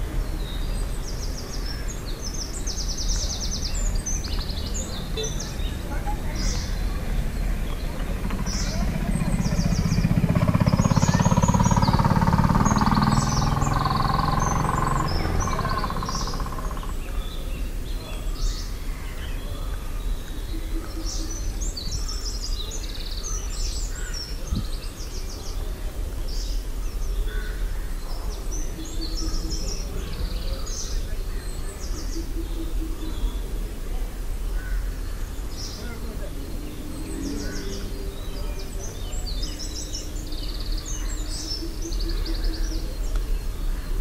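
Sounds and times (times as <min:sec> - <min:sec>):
small birds chirping: 0:00.0 - 0:44.0
vehicle engine passing: 0:03.0 - 0:18.0, 0:32.2 - 0:44.0.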